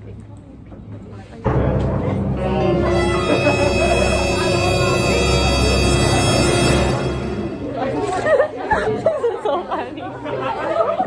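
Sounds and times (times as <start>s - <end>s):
students chattering: 1.0s - 11.0s.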